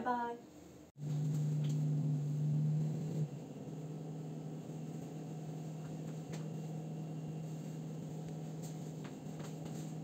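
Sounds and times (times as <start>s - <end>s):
steady low hum: 0.5s - 10.0s.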